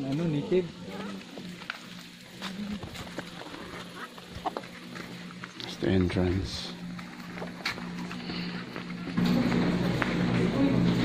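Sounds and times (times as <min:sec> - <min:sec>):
chickens clucking: 0:00.1 - 0:09.2.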